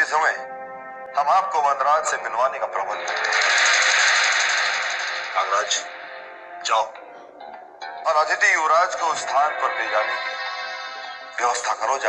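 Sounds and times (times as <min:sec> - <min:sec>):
fast rattling roll effect: 0:03.0 - 0:05.9.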